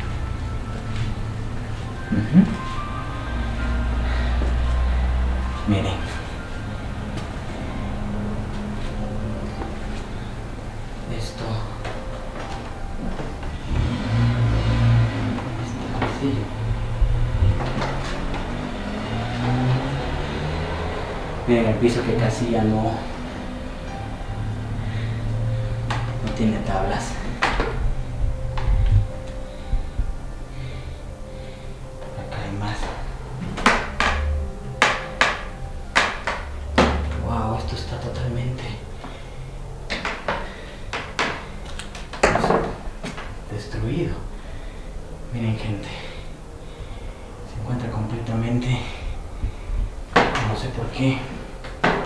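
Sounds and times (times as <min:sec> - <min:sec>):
low steady rumble: 0:00.0 - 0:39.9, 0:42.8 - 0:51.8.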